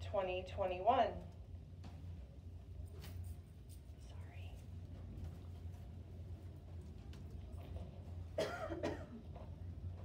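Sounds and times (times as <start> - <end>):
person coughing: 8.4 - 9.2.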